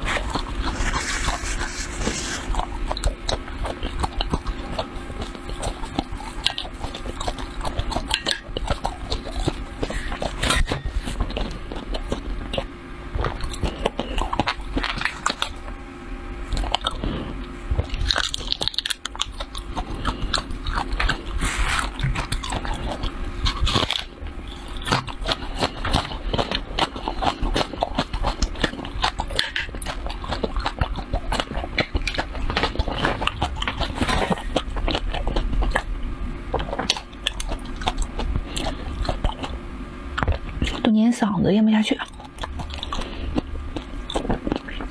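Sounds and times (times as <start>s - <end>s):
chewing crunchy chili flakes: 0.0s - 41.2s, 41.8s - 44.9s.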